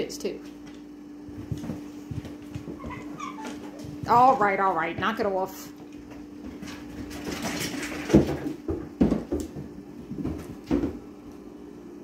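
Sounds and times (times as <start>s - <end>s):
cats scrambling on tile floor: 1.3s - 4.6s, 5.7s - 11.1s.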